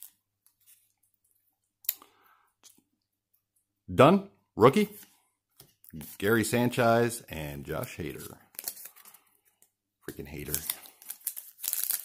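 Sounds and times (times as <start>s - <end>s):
cards rustling: 4.8s - 12.0s.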